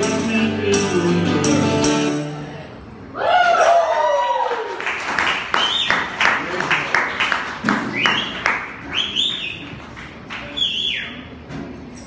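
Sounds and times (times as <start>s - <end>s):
acoustic guitar strummed chords: 0.0s - 2.8s
audience whooping: 3.2s - 6.1s
audience whistling: 5.5s - 6.2s, 7.8s - 9.8s, 10.4s - 11.4s.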